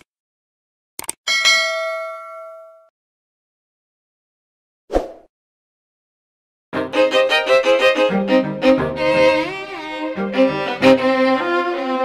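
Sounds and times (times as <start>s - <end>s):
bell ding: 1.3s - 2.9s.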